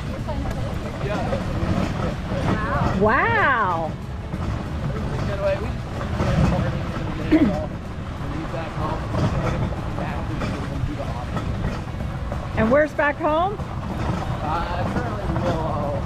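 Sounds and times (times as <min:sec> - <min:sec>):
cart rolling on dirt trail: 0:00.0 - 0:16.0.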